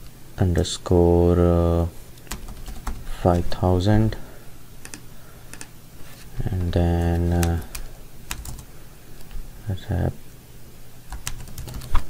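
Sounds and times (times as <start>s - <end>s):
keyboard keystrokes: 2.2s - 3.5s, 6.6s - 8.6s, 11.1s - 12.0s.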